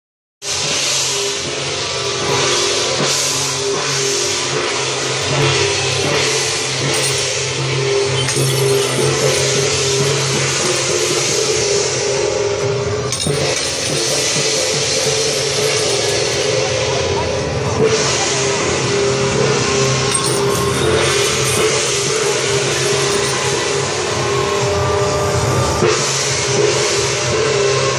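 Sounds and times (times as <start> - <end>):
cymbal crashes: 0.4 - 27.9
crowd chatter: 0.5 - 27.9
low drone: 0.5 - 27.9
drums playing: 0.6 - 24.4.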